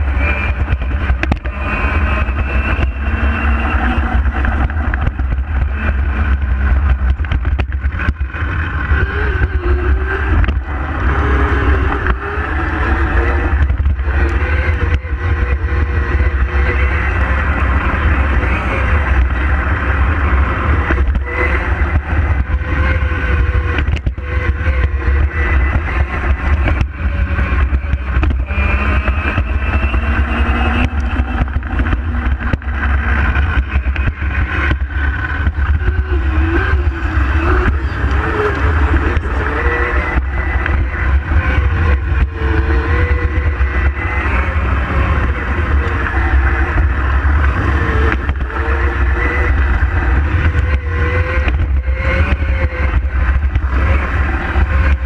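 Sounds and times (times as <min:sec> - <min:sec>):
electric motor whining: 0:00.0 - 0:55.0
wind and road noise: 0:00.0 - 0:55.0.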